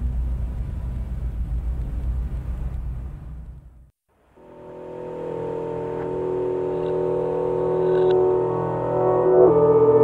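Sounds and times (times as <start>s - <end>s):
piano sustained low chord: 4.4s - 10.0s.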